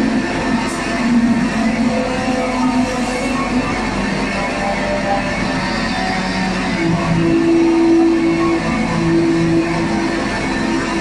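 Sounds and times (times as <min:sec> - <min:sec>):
distorted guitar and synth noise: 0:00.0 - 0:11.0
low drone note: 0:00.0 - 0:11.0.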